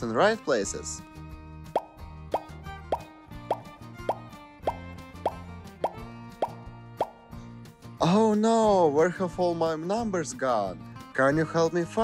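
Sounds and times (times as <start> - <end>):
cartoon bloop pops: 1.8 - 7.3
cheerful children's music: 1.9 - 12.0.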